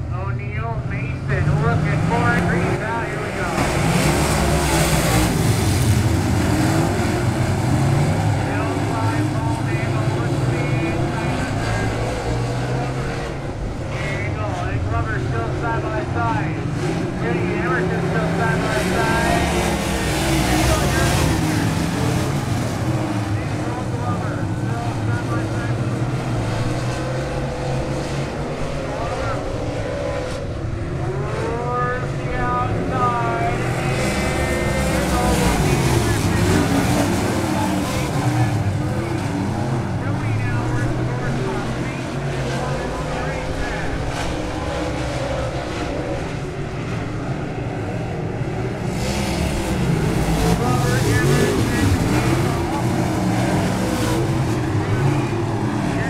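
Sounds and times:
race car engines passing by: 0.0 - 56.0.

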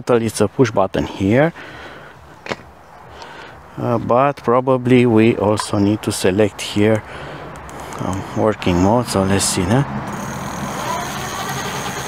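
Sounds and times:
electric hub motor whirring: 10.0 - 12.0.

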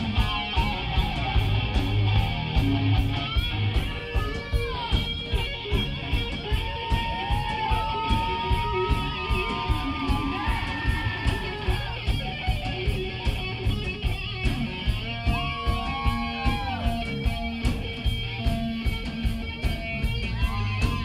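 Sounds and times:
drums keeping a steady beat: 0.0 - 21.0
electric guitar: 0.0 - 21.0.

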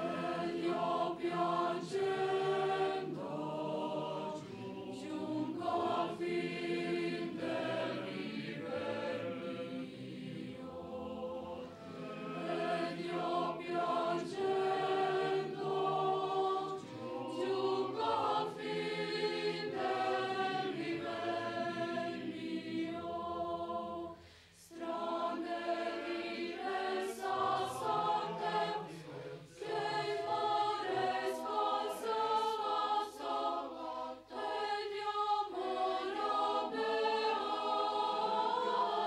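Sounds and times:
mixed choir singing: 0.0 - 39.0.

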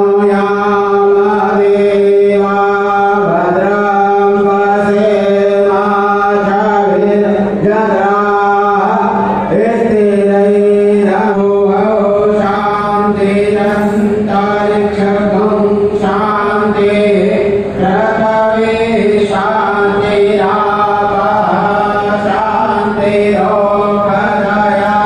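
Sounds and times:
devotional chanting: 0.0 - 25.0
steady low drone: 0.0 - 25.0.

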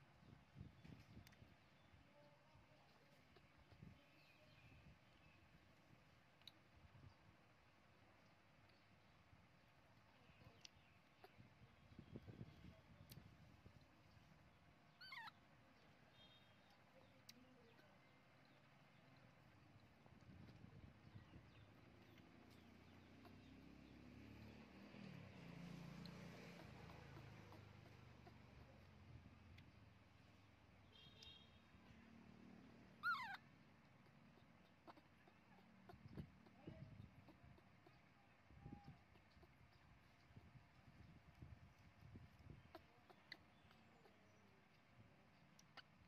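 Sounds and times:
baby monkey squeaking: 14.9 - 15.4, 25.4 - 29.1, 33.0 - 38.1, 42.0 - 44.8.

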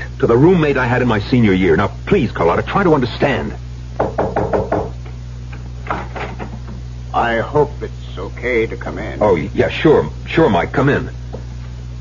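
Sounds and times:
low steady hum: 0.0 - 12.0
knocking on a door: 4.0 - 5.0.

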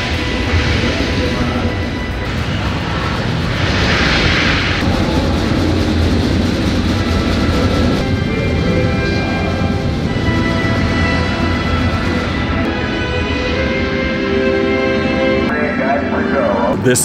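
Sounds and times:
rocket launch rumble: 0.0 - 12.6
sustained musical notes: 4.8 - 17.0.

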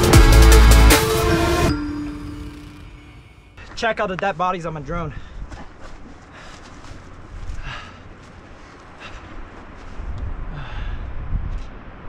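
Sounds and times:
faint breath-like sounds: 6.2 - 11.4
wind rumbling on microphone: 9.1 - 12.0.

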